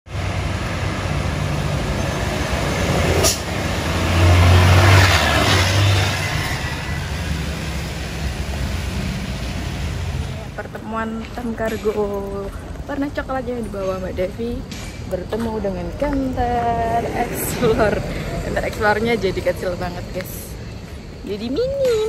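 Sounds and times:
trucks passing on wet road: 0:00.1 - 0:13.0.

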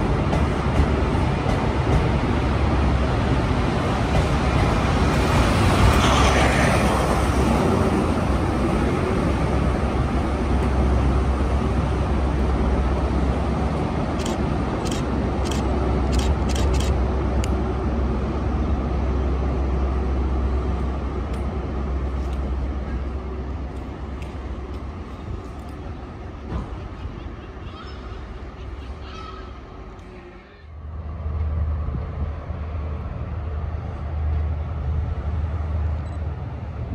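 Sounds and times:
diesel locomotive drone: 0:00.0 - 0:36.9
train coaches rumbling past: 0:00.0 - 0:36.9.

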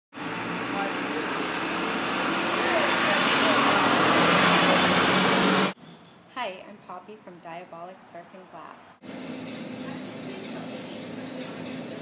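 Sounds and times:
traffic rushing: 0:00.1 - 0:06.0, 0:07.8 - 0:12.0.

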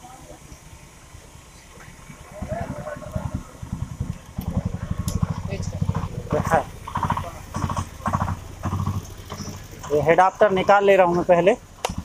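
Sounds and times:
engine running with low pulsing: 0:00.0 - 0:12.0.

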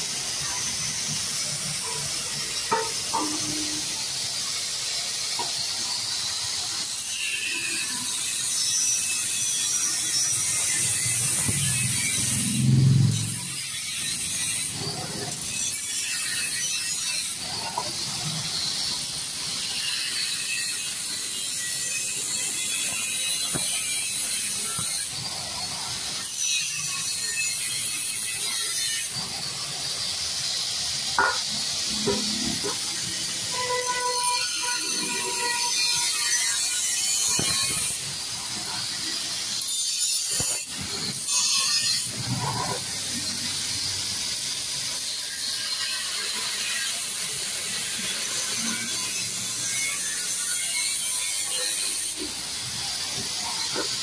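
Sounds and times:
steady hiss: 0:00.0 - 0:54.0.

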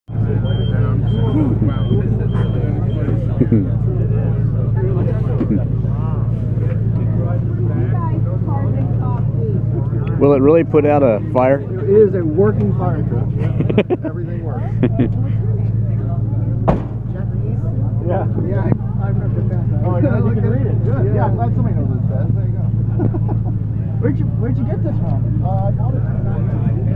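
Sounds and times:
short high beeps: 0:00.4 - 0:03.1
sharp knock: 0:16.7 - 0:17.1.

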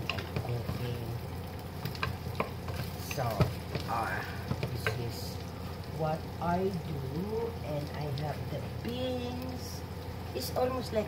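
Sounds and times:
food sizzling in pot: 0:00.0 - 0:11.0.

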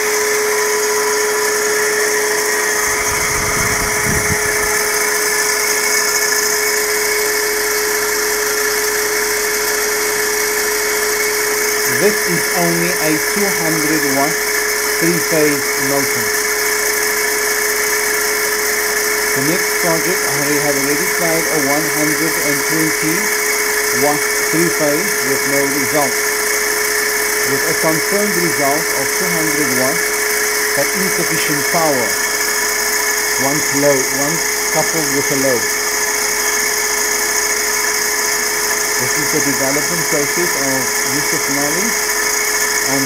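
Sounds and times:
electric motor whine: 0:00.0 - 0:43.0
steady high-pitched tones: 0:01.4 - 0:08.9, 0:09.6 - 0:16.9, 0:18.4 - 0:36.0, 0:39.0 - 0:43.0.

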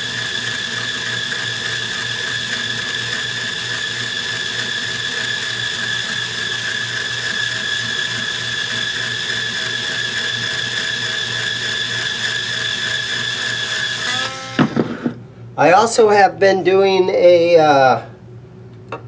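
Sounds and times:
power string winder whining: 0:00.0 - 0:15.2.

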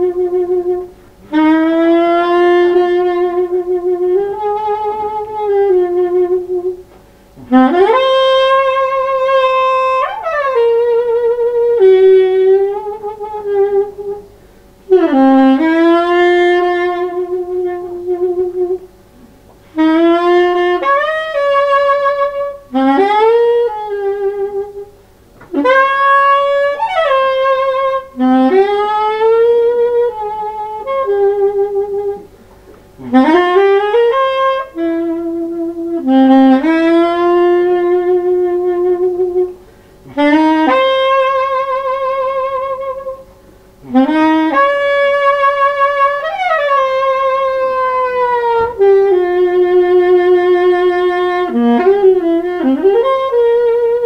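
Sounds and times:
solo saxophone improvising jazz: 0:00.0 - 0:54.0.

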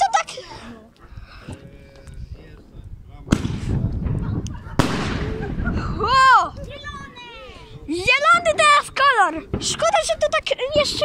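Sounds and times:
firework explosions: 0:03.2 - 0:06.4.

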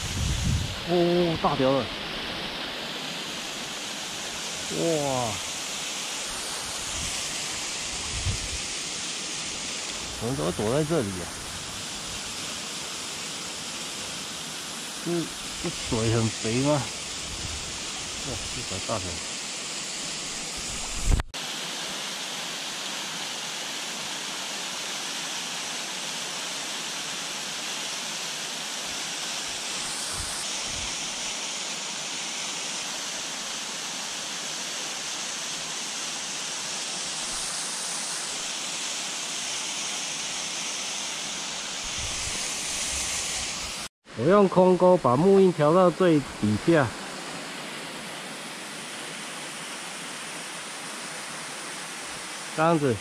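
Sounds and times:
shallow stream running: 0:00.0 - 0:53.0
water rushing from small waterfall: 0:00.0 - 0:53.0.

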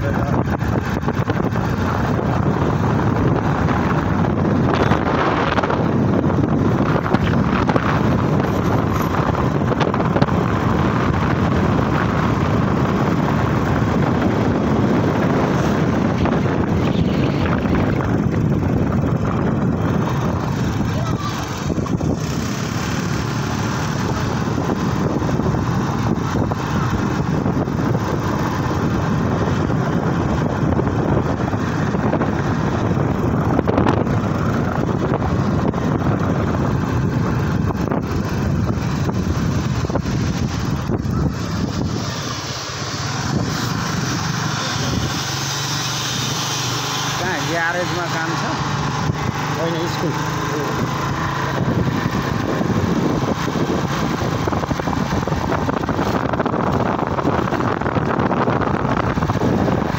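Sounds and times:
motorcycle engine running: 0:00.0 - 0:59.9
wind rushing over microphone: 0:00.0 - 0:59.9.

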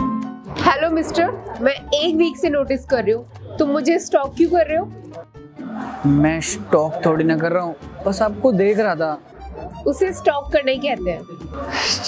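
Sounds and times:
background music: 0:00.0 - 0:12.0
woman speaking: 0:00.5 - 0:04.9, 0:09.8 - 0:11.4.

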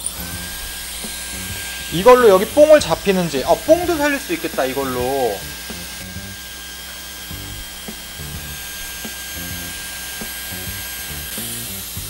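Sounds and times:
hair styler air rush and whine: 0:00.0 - 0:12.0.

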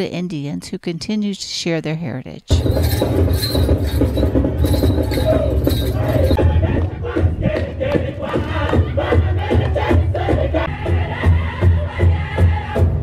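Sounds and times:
steady drumbeat: 0:02.5 - 0:13.0
chanted singing: 0:04.6 - 0:13.0.

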